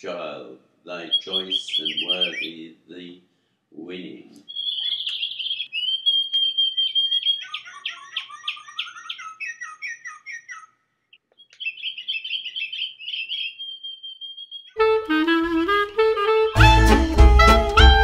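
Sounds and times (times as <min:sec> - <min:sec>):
songbird trilling and chirping: 0:01.0 - 0:02.6, 0:04.4 - 0:14.8
saxophone music: 0:14.8 - 0:18.0.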